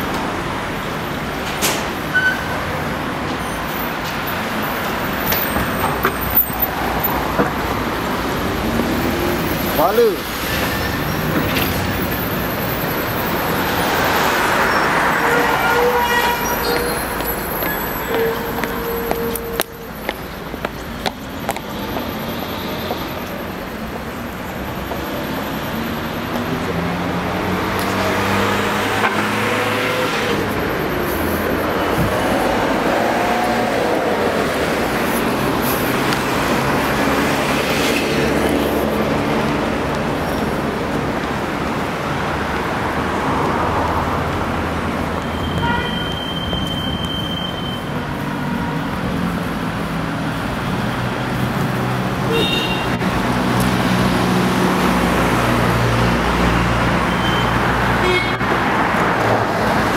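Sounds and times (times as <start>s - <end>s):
street traffic: 0.0s - 59.9s.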